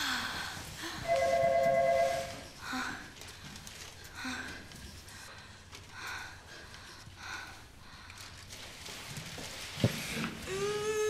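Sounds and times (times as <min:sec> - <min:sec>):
electronic tone: 0:01.1 - 0:02.4.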